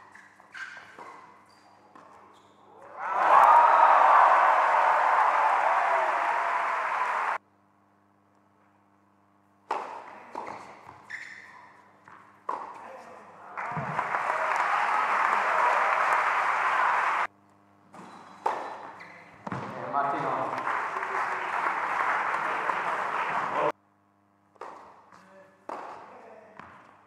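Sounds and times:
crowd cheering and clapping: 0:02.9 - 0:07.4, 0:13.5 - 0:17.3, 0:20.1 - 0:23.7
tennis ball impacts: 0:09.6 - 0:10.7, 0:12.0 - 0:12.8, 0:24.5 - 0:26.7.

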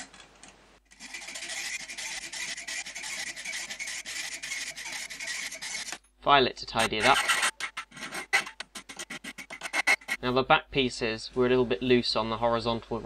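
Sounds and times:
hacksaw cutting metal rod: 0:00.9 - 0:06.0, 0:06.7 - 0:10.2.

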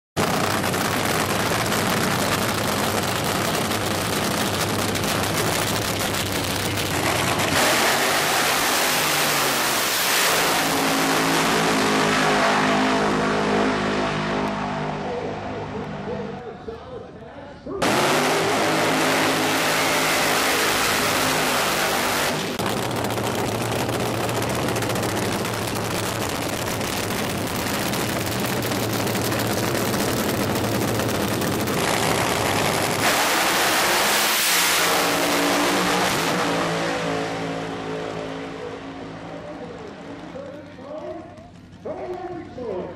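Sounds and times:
drag racing engines roaring: 0:00.2 - 0:42.9.

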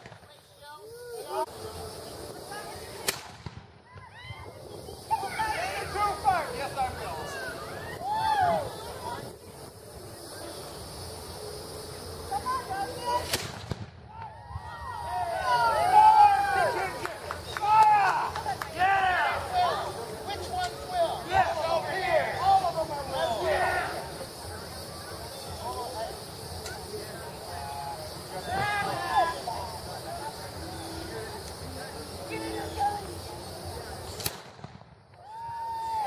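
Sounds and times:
people talking over one another: 0:00.0 - 0:13.4, 0:14.1 - 0:34.5
faint gunshot: 0:03.0 - 0:03.8, 0:13.2 - 0:14.3, 0:34.1 - 0:35.0.

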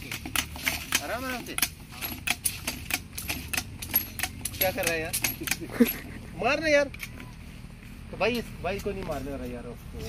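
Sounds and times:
sharp clicks: 0:00.0 - 0:05.8.

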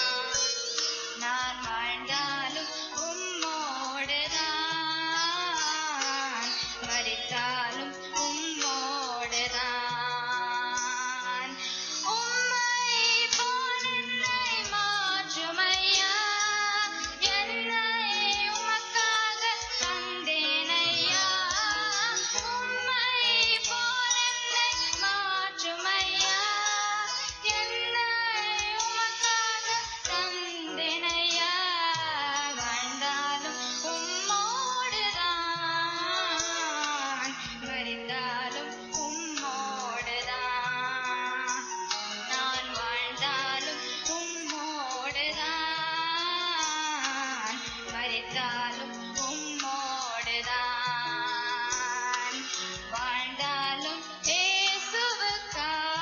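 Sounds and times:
girl singing into a microphone: 0:00.0 - 0:56.0
instrumental backing music: 0:00.0 - 0:56.0.

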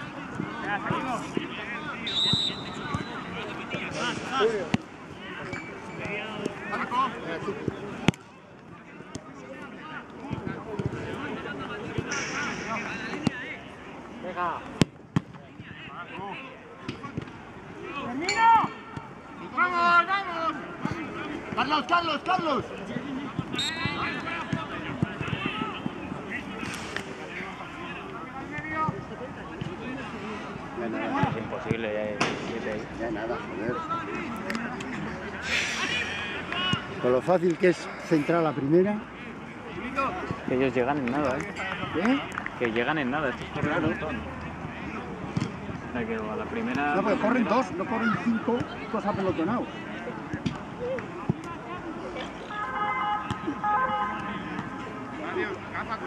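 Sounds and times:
footballers shouting: 0:00.0 - 0:14.8, 0:15.5 - 0:56.0
open-air background noise: 0:00.0 - 0:56.0.

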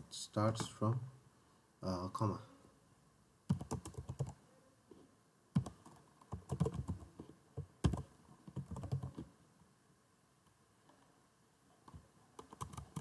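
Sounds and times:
computer keyboard typing: 0:03.5 - 0:04.4, 0:05.6 - 0:07.1, 0:07.8 - 0:09.3, 0:11.9 - 0:13.0.

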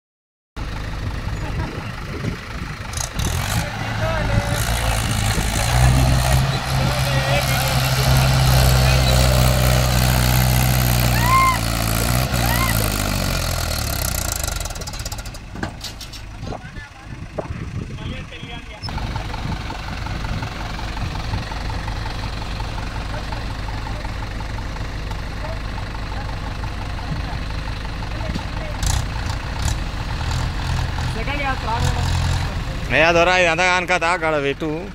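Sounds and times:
tractor diesel engine under load: 0:00.6 - 0:34.9.

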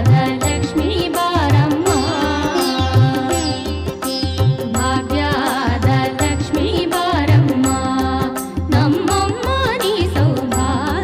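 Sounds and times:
percussion strokes: 0:00.0 - 0:11.0
women singing: 0:00.0 - 0:11.0.

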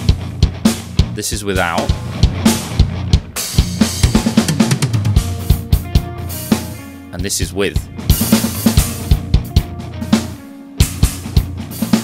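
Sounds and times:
rock drum groove: 0:00.0 - 0:12.0.

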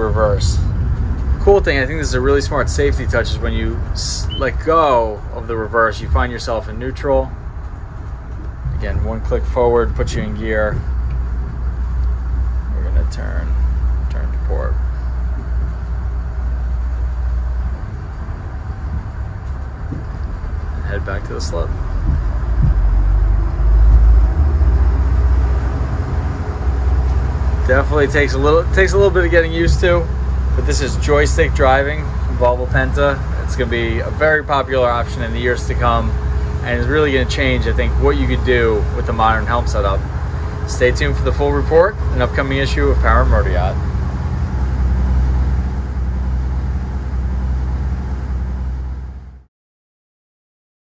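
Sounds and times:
wind and water hiss: 0:00.0 - 0:48.7
boat engine rumble: 0:00.0 - 0:49.5.

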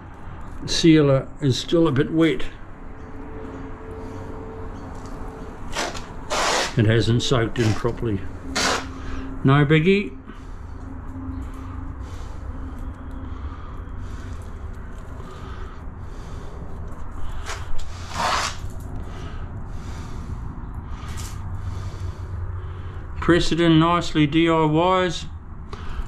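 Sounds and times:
steady low hum: 0:00.0 - 0:26.0
brushing rustle: 0:05.6 - 0:09.0, 0:17.3 - 0:18.8.

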